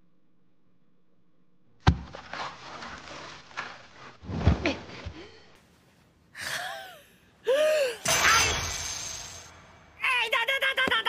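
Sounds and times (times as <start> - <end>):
person gasping: 6.4 - 8.1.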